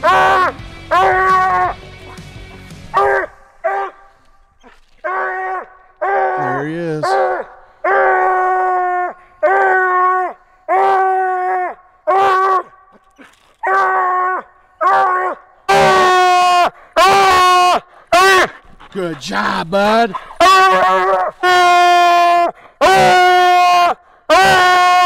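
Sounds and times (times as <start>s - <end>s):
hound bawling: 0.0s - 25.0s.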